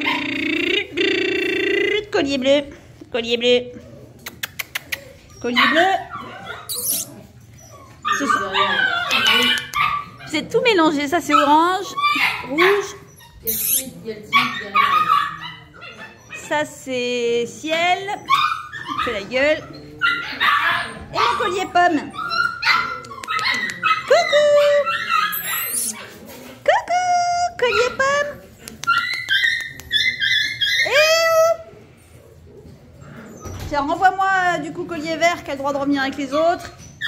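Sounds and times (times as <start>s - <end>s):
puppies whimpering and yipping: 4.7s - 16.7s, 18.2s - 26.3s, 27.5s - 31.7s, 32.8s - 34.0s, 36.3s - 37.0s.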